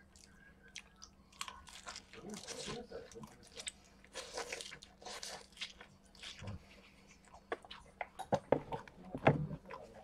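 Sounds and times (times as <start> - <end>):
man chewing crunchy food: 0.0 - 10.0.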